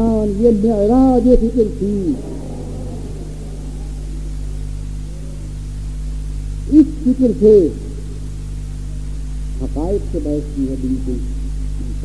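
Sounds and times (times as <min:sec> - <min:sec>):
low electrical hum: 0:00.0 - 0:12.0
tape hiss: 0:01.2 - 0:11.9.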